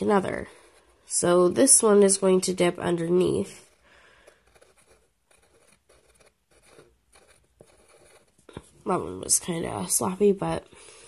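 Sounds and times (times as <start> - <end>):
pencil scratching on paper: 0.0 - 9.0.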